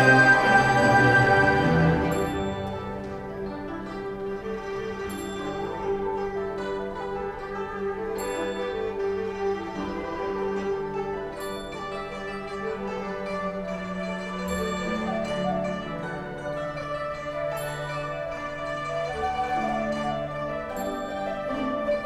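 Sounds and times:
bowed strings and winds: 0.0 - 22.0
plucked strings: 0.0 - 22.0.

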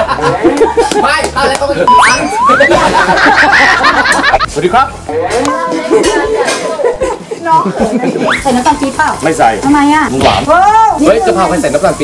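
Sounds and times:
cartoon boing sound effect: 1.9 - 2.8.

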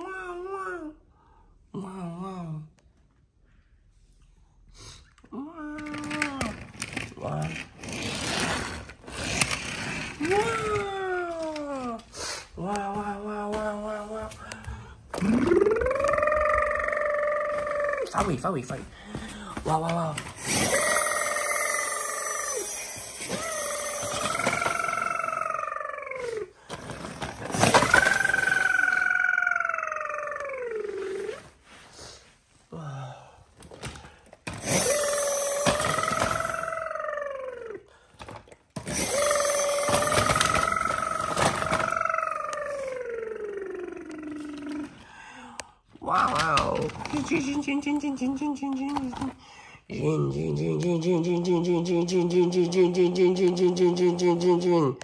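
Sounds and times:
toy police siren wailing: 20.5 - 26.3, 27.7 - 30.4, 34.6 - 37.4, 38.9 - 42.9.

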